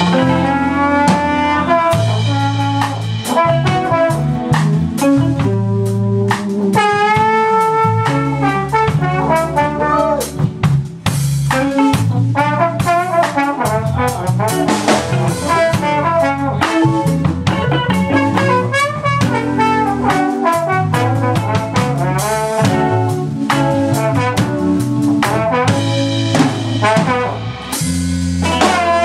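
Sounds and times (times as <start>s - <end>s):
drum kit: 0.0s - 29.0s
electric bass: 0.0s - 29.0s
electric guitar: 0.0s - 29.0s
trombone lead line: 0.0s - 29.0s.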